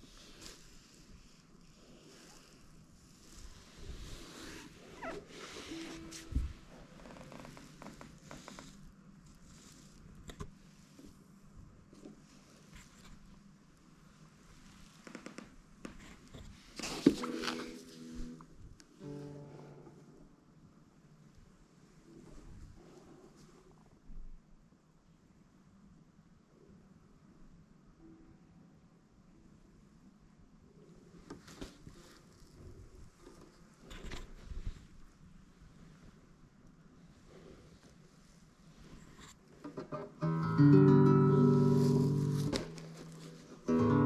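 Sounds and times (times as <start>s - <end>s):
guitar strings ringing: 17.2s - 20.0s, 39.7s - 44.0s.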